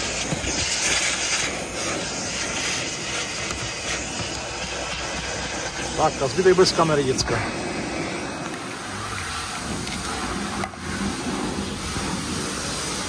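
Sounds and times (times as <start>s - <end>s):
vacuum cleaner suction hiss: 0.0s - 13.0s.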